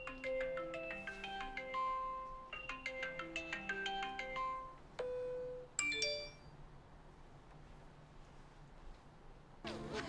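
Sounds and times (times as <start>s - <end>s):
marimba-like ringtone melody: 0.0s - 4.8s, 5.8s - 6.5s.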